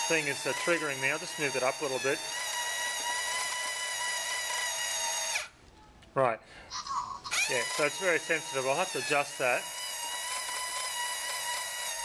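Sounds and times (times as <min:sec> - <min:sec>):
toy motor geared whine: 0:00.0 - 0:05.6, 0:06.8 - 0:12.0.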